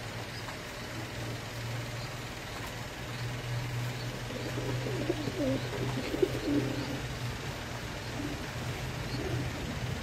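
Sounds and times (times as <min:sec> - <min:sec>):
steady low hum: 0:00.0 - 0:10.0
pigeons cooing: 0:04.1 - 0:07.1, 0:08.0 - 0:10.0.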